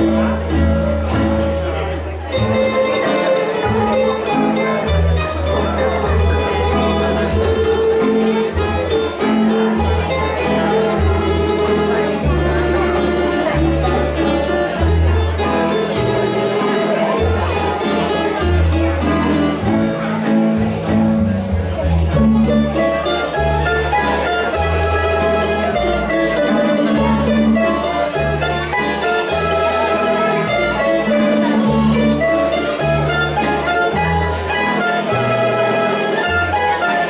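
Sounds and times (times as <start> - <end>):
small tamburas playing melody: 0.0 - 1.7, 2.3 - 37.0
plucked string folk ensemble: 0.0 - 37.0.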